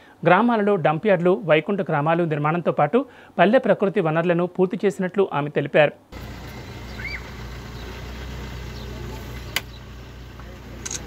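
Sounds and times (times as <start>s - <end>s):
low outdoor rumble: 6.1s - 11.0s.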